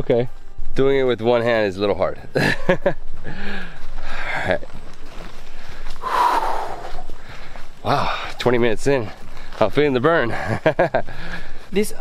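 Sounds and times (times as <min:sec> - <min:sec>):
man exhaling hard: 0:06.0 - 0:07.1.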